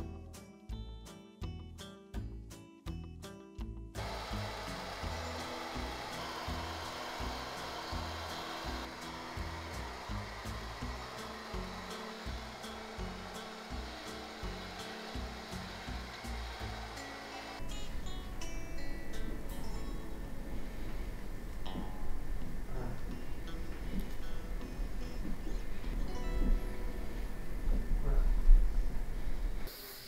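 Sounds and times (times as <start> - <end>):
background music: 0.0 - 27.8
hair dryer blowing: 4.0 - 17.7.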